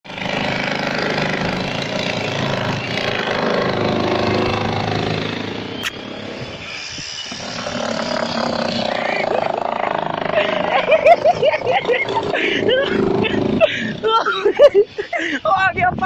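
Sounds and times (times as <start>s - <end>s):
small engine running: 0.1s - 15.5s
sharp click: 5.8s - 6.0s.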